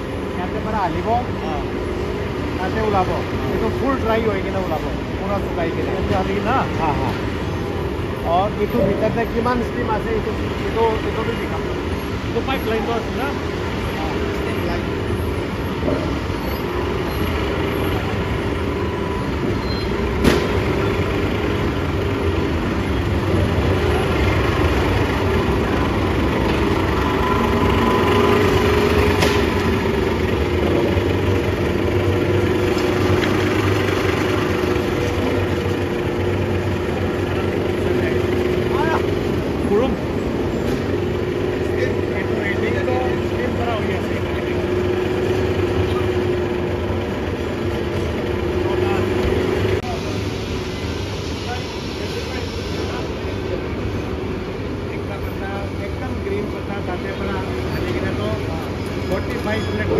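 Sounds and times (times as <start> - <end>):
machinery drone: 0.0 - 59.9.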